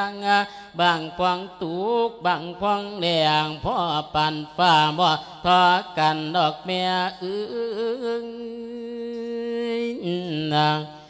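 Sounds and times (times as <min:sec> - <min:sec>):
man chanting with wavering pitch: 0:00.0 - 0:11.0
short breaths: 0:00.5 - 0:00.8.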